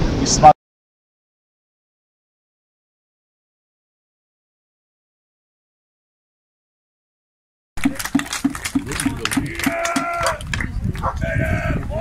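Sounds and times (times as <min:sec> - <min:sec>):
wooden shields being beaten: 0:07.8 - 0:10.6.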